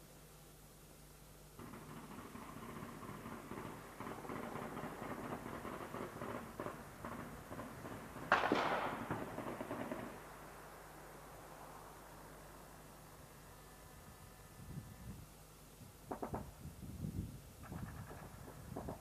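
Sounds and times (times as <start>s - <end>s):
crackle of gunshots: 1.6s - 10.3s, 16.1s - 16.5s, 17.6s - 19.0s.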